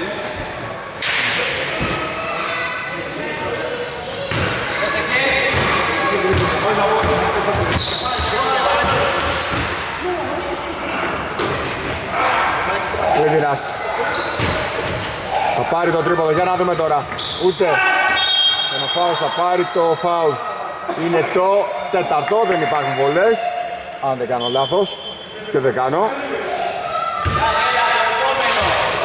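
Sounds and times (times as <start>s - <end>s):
sneaker squeaks: 4.0s - 10.0s, 11.5s - 19.8s, 24.3s - 27.7s
basketball bouncing: 4.3s - 4.6s, 5.5s - 7.8s, 27.2s - 27.4s.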